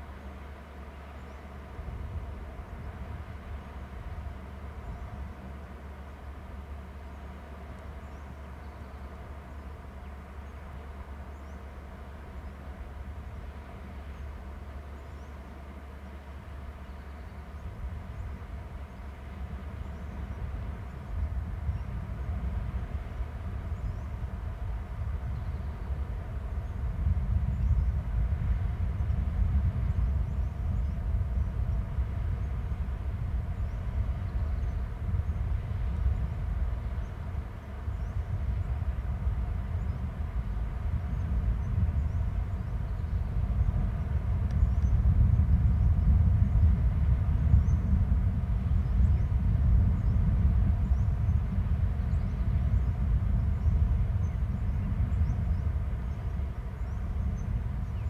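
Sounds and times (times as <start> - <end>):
low outdoor rumble: 0.0 - 58.0
faint high ticks: 44.4 - 45.0.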